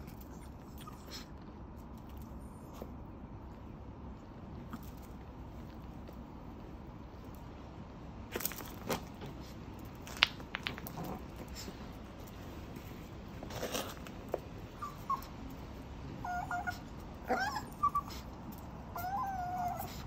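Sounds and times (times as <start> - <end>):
dog whining faintly: 0.0 - 1.5, 14.7 - 15.6, 16.2 - 20.0
ball clicks and scuffs on concrete: 8.3 - 12.4.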